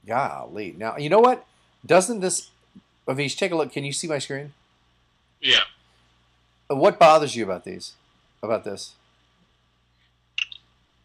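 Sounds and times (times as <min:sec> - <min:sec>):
lip smack: 0:10.4 - 0:10.7.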